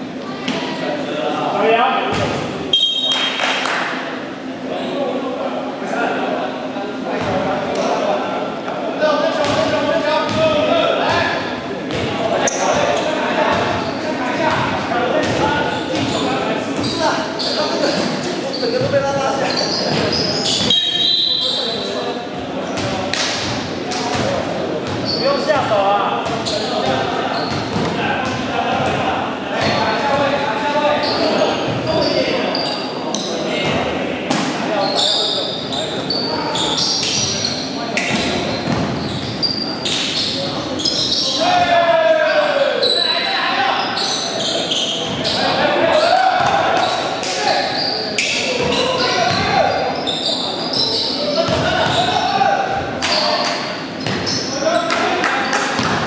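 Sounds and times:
players shouting: 0:40.9 - 0:47.9
basketball bouncing on court: 0:51.5 - 0:52.1.

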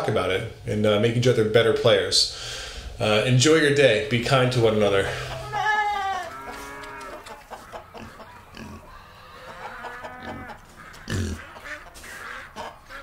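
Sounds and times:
livestock calls: 0:05.0 - 0:13.0.

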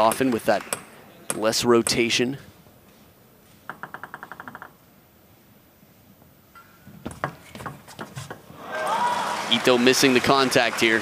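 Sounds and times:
table tennis ball bouncing: 0:00.0 - 0:02.0, 0:03.7 - 0:04.8, 0:06.6 - 0:08.5
table tennis ball hits: 0:00.0 - 0:02.0, 0:03.7 - 0:04.8
crowd noise: 0:08.5 - 0:11.0.

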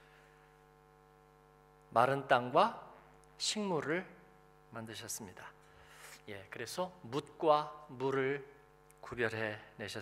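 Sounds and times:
faint electrical mains hum: 0:00.0 - 0:10.0
man speaking: 0:01.9 - 0:10.0.

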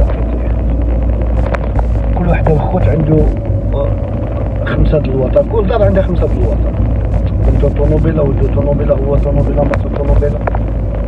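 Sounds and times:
car driving rumble: 0:00.0 - 0:11.0.

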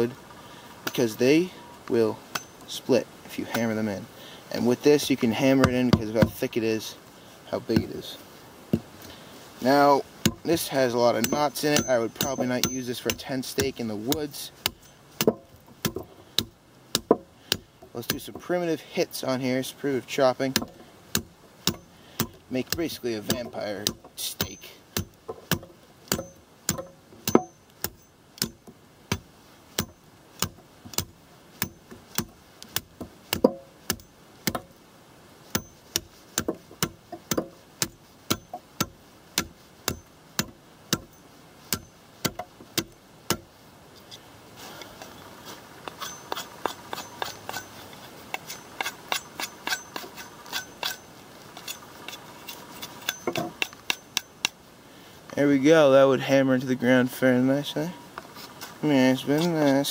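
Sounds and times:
knife chopping wooden pole: 0:10.2 - 0:10.6, 0:11.2 - 0:18.5, 0:20.5 - 0:34.8, 0:35.5 - 0:43.5
rasp of cutting: 0:45.4 - 0:54.3.

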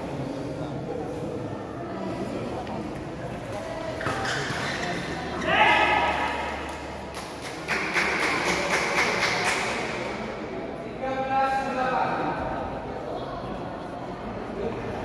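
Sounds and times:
loud shout: 0:05.4 - 0:06.6
rapid clapping: 0:06.7 - 0:09.8.

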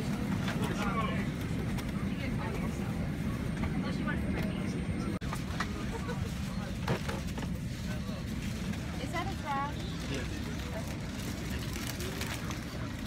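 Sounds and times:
airliner cabin hum: 0:00.0 - 0:13.0
passengers chattering: 0:00.0 - 0:13.0.

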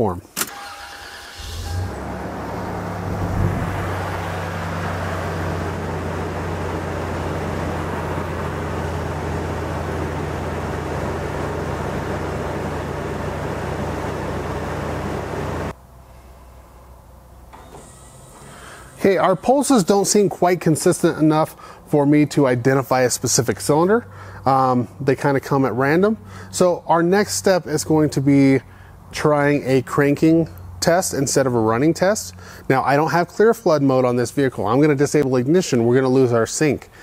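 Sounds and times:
car engine starting and idling: 0:00.4 - 0:15.8, 0:17.4 - 0:20.2.

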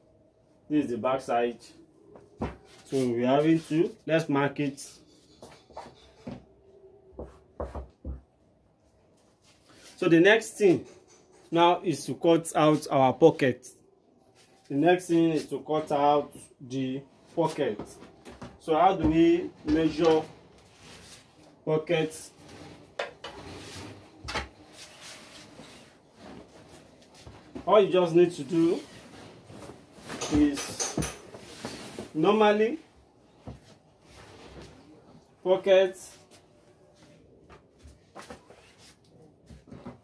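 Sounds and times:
fabric rustling: 0:22.4 - 0:30.6.

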